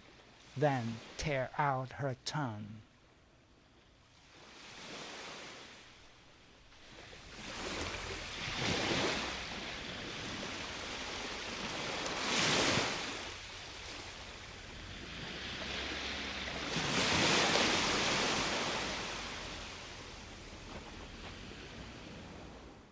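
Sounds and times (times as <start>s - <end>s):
ocean waves washing onto shore: 4.0s - 22.9s.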